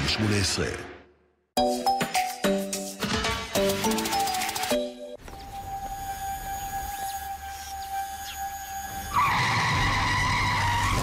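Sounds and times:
car tyre squeal: 0:06.2 - 0:11.0.

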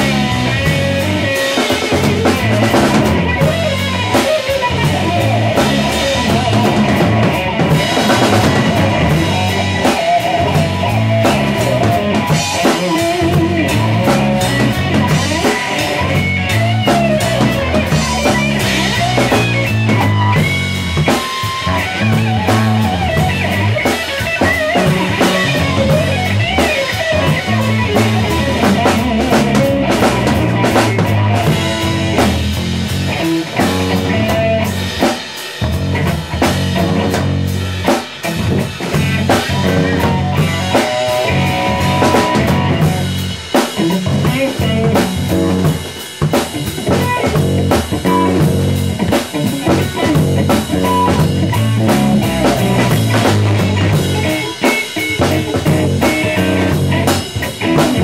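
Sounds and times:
rock band playing: 0:00.0 - 0:58.0.

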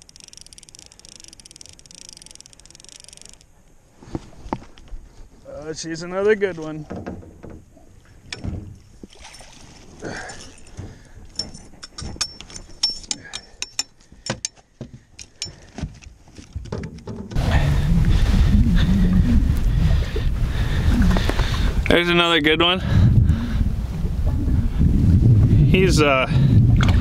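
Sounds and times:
fishing tackle clicking and knocking: 0:00.0 - 0:03.5, 0:10.4 - 0:17.4
wind rumble on microphone: 0:16.6 - 0:27.0.

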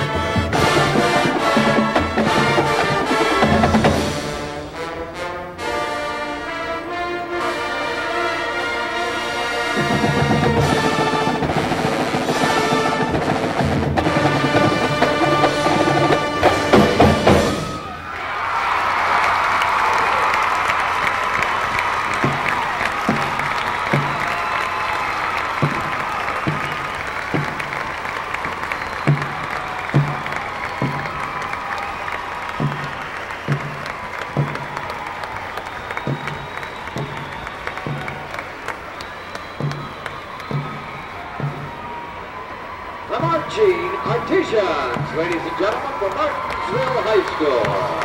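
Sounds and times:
crowd applauding and cheering: 0:00.0 - 0:05.0, 0:06.0 - 0:48.0
marching drums beating: 0:00.0 - 0:05.3, 0:09.0 - 0:18.0, 0:20.4 - 0:48.0.

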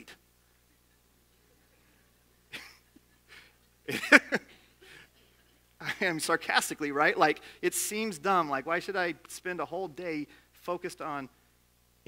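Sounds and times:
faint low room hum: 0:00.0 - 0:12.0.

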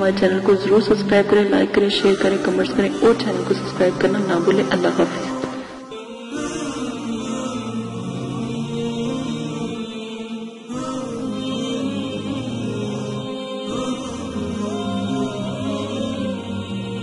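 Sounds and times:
slow chanted vocal music: 0:00.0 - 0:17.0.

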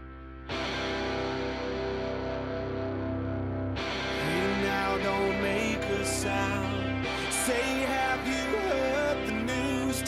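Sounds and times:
distorted electric guitar rock music: 0:00.0 - 0:10.0.

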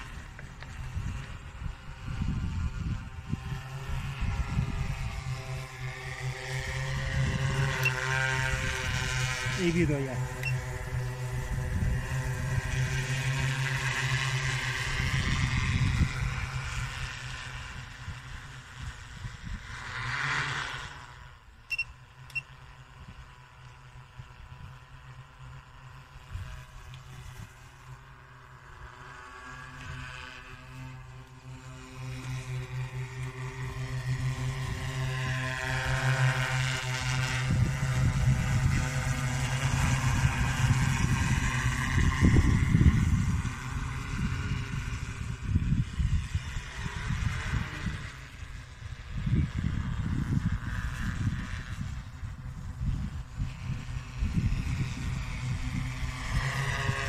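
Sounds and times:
drone propellers droning: 0:00.0 - 0:57.0.

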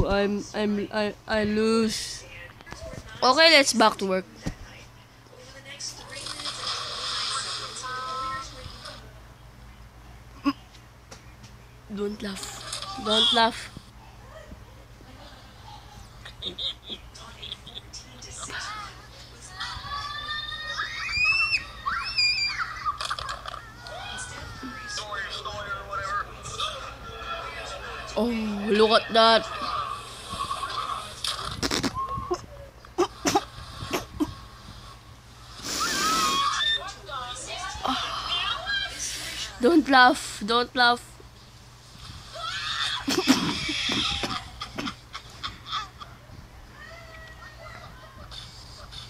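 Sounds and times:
quieter voices: 0:04.2 - 0:49.0
little girls screaming: 0:20.2 - 0:24.9, 0:35.8 - 0:36.9, 0:42.4 - 0:44.4
high wheezing laughter with shrieks: 0:20.6 - 0:24.8, 0:35.6 - 0:36.9, 0:42.3 - 0:46.2.

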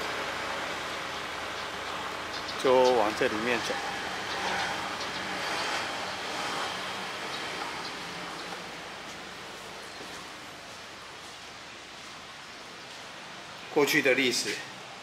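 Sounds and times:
distant road traffic hiss: 0:00.0 - 0:15.0.

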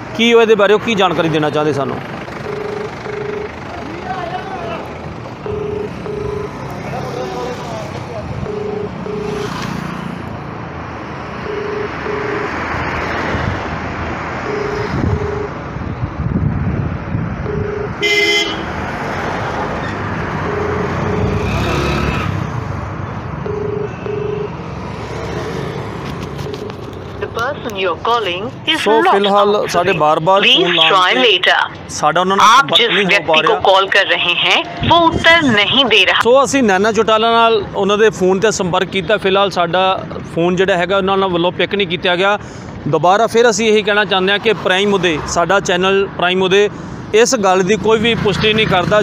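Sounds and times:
street traffic noise: 0:00.0 - 0:49.0
telephone ringback tone: 0:02.4 - 0:03.6, 0:05.4 - 0:06.7, 0:08.4 - 0:09.6, 0:11.4 - 0:12.7, 0:14.4 - 0:15.6, 0:17.4 - 0:18.1, 0:20.3 - 0:21.7, 0:23.4 - 0:24.6, 0:26.3 - 0:27.6
vehicle horn: 0:17.4 - 0:18.8, 0:23.5 - 0:24.6.

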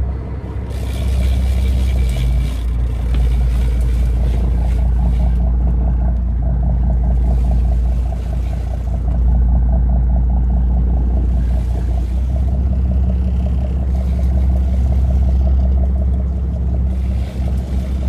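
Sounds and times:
boat engine humming: 0:00.0 - 0:18.0.

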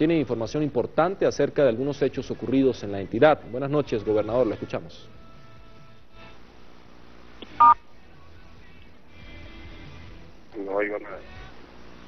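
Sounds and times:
telephone touch-tone beep: 0:07.5 - 0:07.8.

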